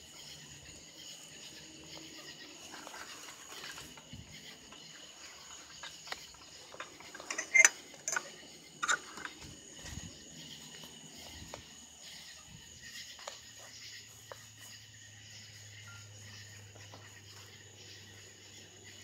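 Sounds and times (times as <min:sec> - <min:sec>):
crickets chirring: 0:00.0 - 0:19.0.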